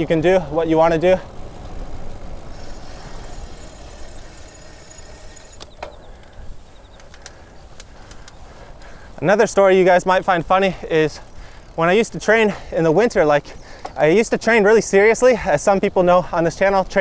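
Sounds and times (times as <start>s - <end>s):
bike tyre and wind noise: 0.0s - 17.0s
light bike clicks: 1.3s - 14.5s.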